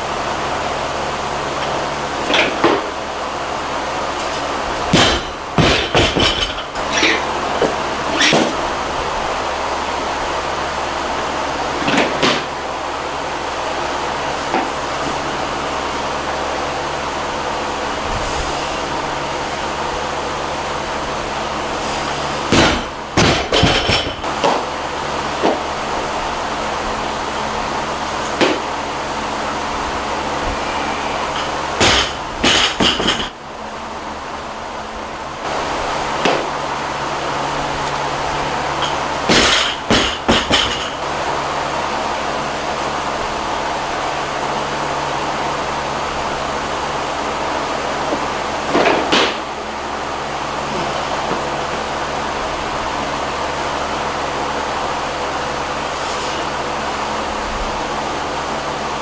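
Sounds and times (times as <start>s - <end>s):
steady hum: 0.0s - 59.0s.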